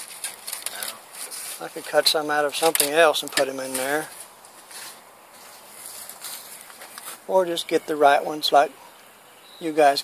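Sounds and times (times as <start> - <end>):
faint soft rustles: 0.0 - 2.0, 2.6 - 7.3
outdoor background noise: 0.0 - 10.0.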